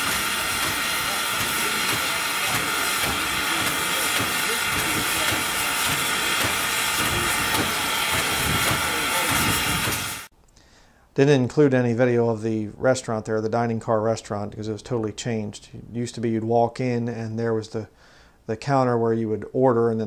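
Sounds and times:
faint voices: 0.0s - 10.1s
steam locomotive venting steam: 0.0s - 10.3s.

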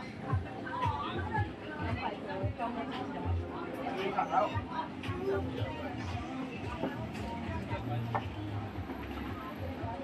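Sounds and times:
people talking and chattering: 0.0s - 10.0s.

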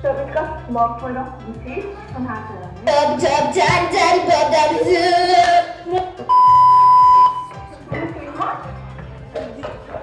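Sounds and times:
voices singing: 2.8s - 8.1s
steady electronic beep: 6.3s - 7.6s.

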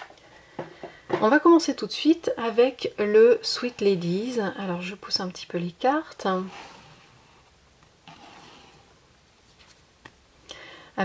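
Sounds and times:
cards sliding across a tabletop: 6.4s - 9.9s.

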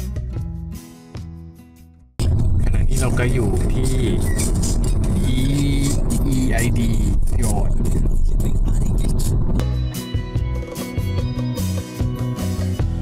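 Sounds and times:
car engine and road rumble: 2.2s - 9.6s
people talking: 2.2s - 9.6s.

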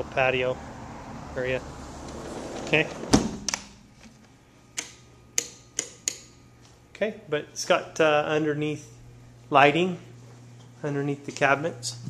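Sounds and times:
outdoor background noise: 0.0s - 5.2s
door bumping shut: 2.0s - 3.7s.

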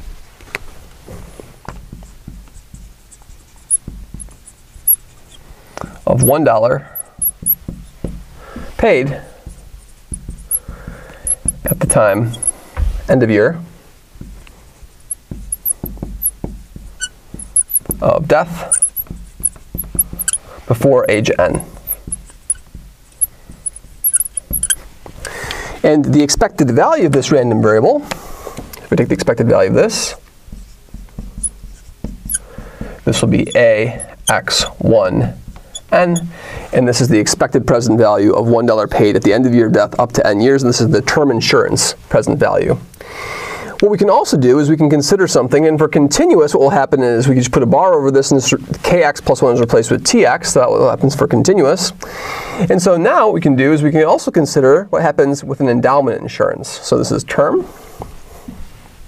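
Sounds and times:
marker squeaking on glass: 1.1s - 13.5s, 14.2s - 24.9s, 28.9s - 36.4s.

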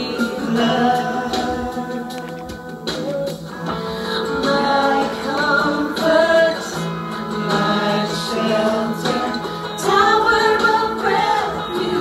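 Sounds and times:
women singing worship song: 0.0s - 2.2s, 3.7s - 12.0s.

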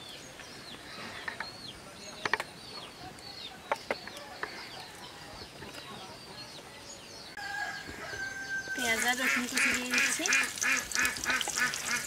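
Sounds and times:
rooster crowing: 7.4s - 8.9s
onions sizzling in hot oil: 8.8s - 12.0s.

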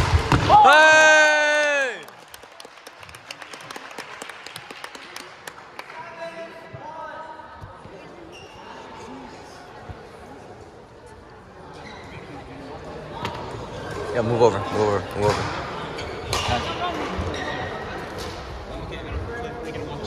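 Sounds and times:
faint chatter: 6.6s - 20.0s.

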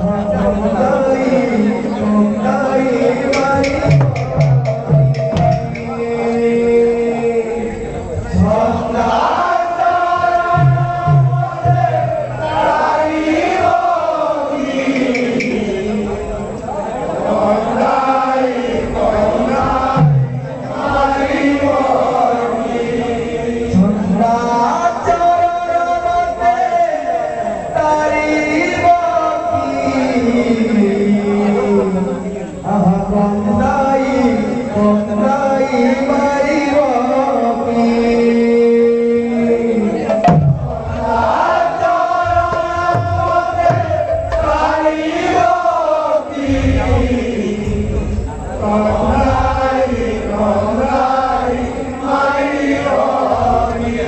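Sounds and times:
men chanting in chorus: 0.0s - 54.0s
barrel drum: 3.2s - 6.3s, 10.2s - 12.6s, 14.8s - 16.0s, 19.5s - 21.6s, 40.0s - 45.5s
hand cymbals: 14.8s - 16.6s.

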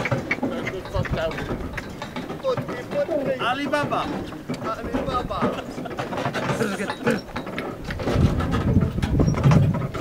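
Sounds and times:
vehicle rattling and knocking: 0.0s - 10.0s.

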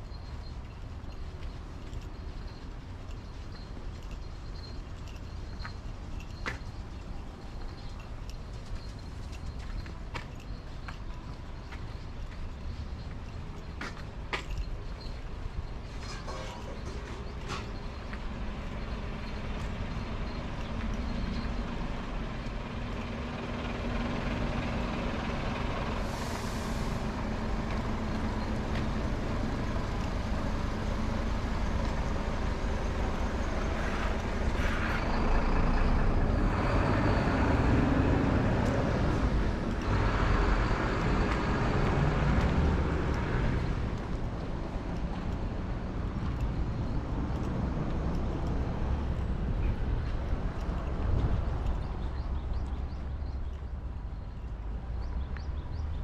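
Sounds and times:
vehicles passing on street: 0.0s - 56.0s.

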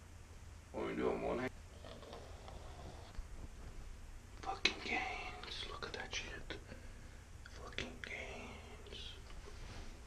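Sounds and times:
man whispering: 4.4s - 9.6s.

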